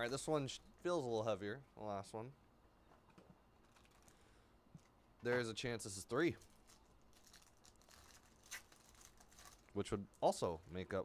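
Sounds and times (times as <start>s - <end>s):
foil wrapper tearing and crinkling: 6.4s - 9.8s.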